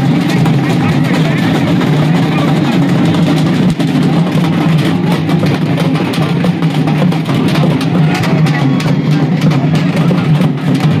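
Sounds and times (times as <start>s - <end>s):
frame drums beaten fast: 0.0s - 11.0s.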